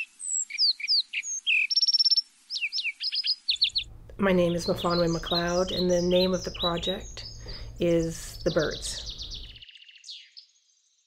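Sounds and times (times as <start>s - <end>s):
songbirds chirping and singing: 0.0s - 10.6s.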